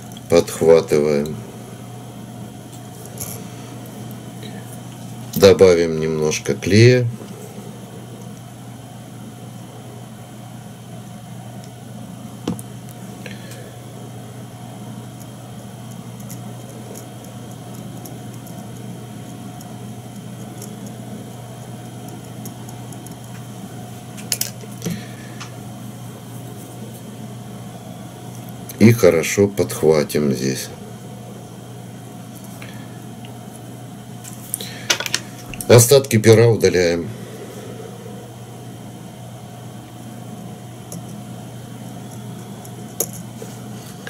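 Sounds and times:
low electrical hum: 0.0 - 44.0.

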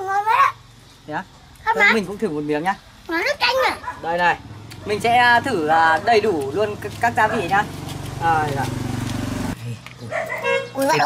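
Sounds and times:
engine running: 4.4 - 10.0.

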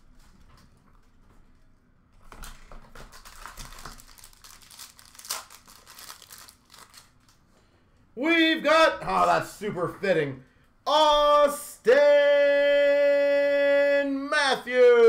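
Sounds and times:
plastic wrap tearing and crinkling: 2.3 - 7.4.

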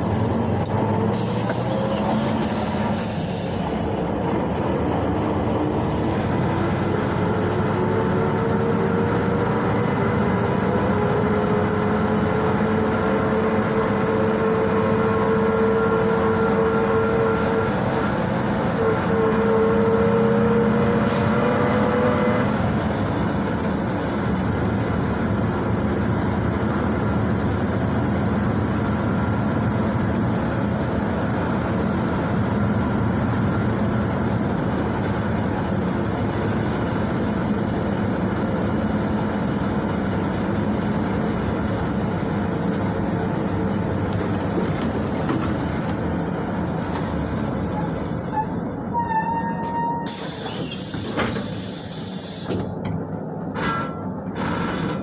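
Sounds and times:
bus engine drone: 0.0 - 55.0
road noise: 0.0 - 55.0.

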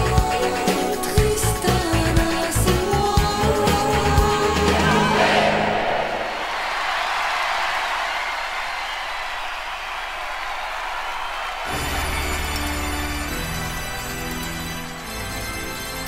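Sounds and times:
audience cheering and applauding: 3.7 - 14.2.

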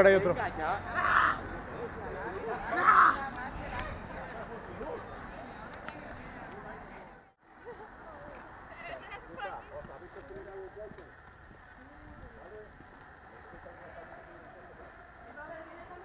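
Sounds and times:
distant voices and shouting: 0.0 - 16.0.

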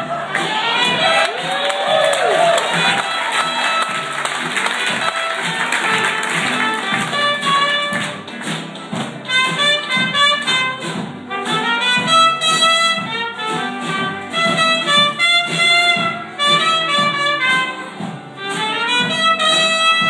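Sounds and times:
band playing: 0.0 - 20.0
wind instrument melody: 0.0 - 20.0
light percussion beat: 0.4 - 20.0.

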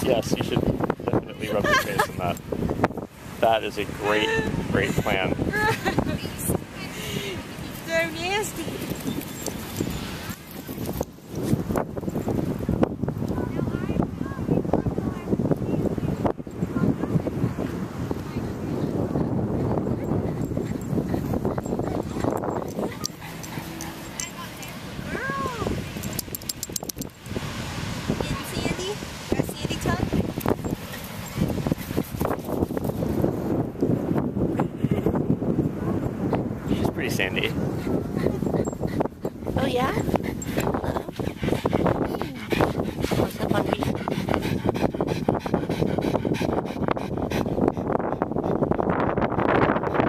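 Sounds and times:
wind rumbling on microphone: 0.0 - 50.0
light clicks or jingles: 8.8 - 12.2, 21.6 - 24.8, 26.0 - 27.4
dog panting: 19.5 - 24.8, 36.8 - 50.0.

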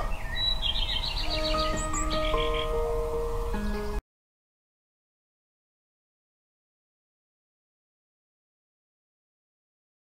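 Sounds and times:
ringtone tune: 1.3 - 3.4.

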